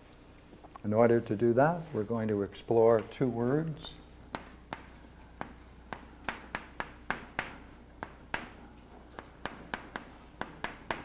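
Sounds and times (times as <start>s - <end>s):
chalk scratching on chalkboard: 3.8s - 11.0s
sharp chalk taps: 4.3s - 11.0s.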